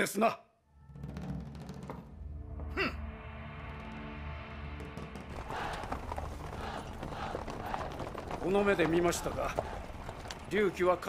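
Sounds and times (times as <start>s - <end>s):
horse hooves clip-clopping: 4.8s - 11.0s.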